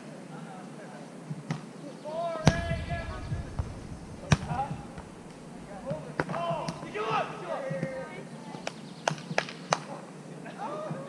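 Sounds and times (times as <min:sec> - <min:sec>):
volleyball being hit: 0:02.4 - 0:07.0.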